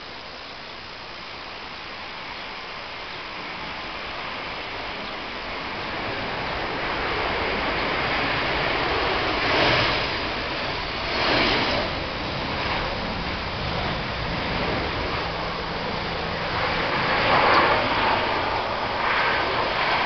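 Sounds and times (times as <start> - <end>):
jet engines roaring: 0.0 - 20.0.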